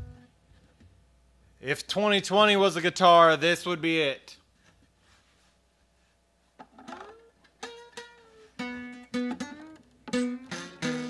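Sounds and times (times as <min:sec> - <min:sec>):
faint plucked guitar notes: 0:00.0 - 0:00.3, 0:07.0 - 0:11.0.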